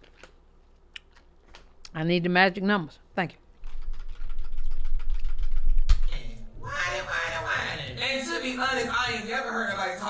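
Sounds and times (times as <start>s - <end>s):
keyboard and mouse clicks: 3.6s - 6.1s.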